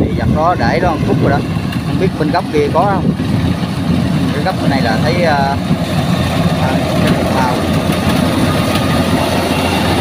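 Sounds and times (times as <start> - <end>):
combine harvester running: 0.0 - 10.0.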